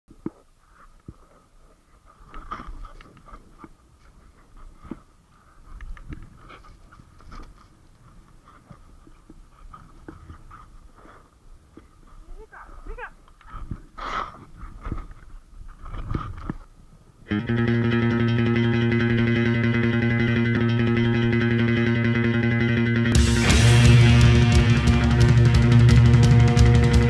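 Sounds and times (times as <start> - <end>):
person's voice: 12.2 - 13.2
person breathing: 13.5 - 14.6.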